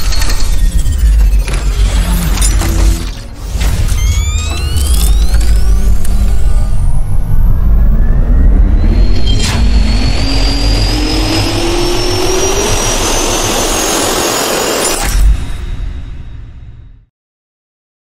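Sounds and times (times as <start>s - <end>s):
jet engine turbine spooling up: 3.5s - 15.0s.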